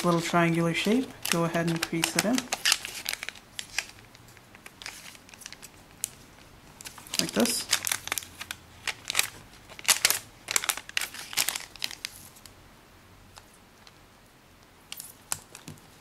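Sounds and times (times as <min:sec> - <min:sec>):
paper folding and rustling: 0:00.0 - 0:12.5.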